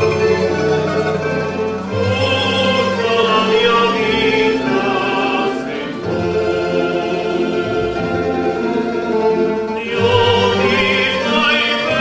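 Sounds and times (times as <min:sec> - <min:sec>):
string orchestra accompaniment: 0:00.0 - 0:12.0.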